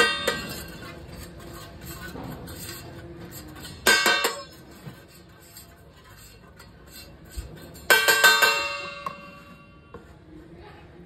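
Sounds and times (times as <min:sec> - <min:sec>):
spoon clattering on metal plate: 0:00.0 - 0:09.6
spoon scraping plate: 0:00.0 - 0:09.9.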